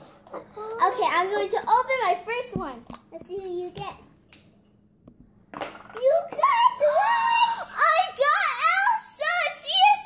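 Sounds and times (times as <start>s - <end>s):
girl's excited exclamation: 6.4s - 10.0s.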